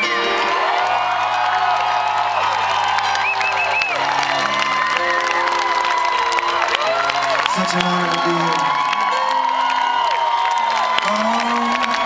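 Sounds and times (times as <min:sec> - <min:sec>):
piano playing slow chords: 0:00.0 - 0:01.3, 0:03.9 - 0:10.2
audience cheering and whooping: 0:00.0 - 0:12.0.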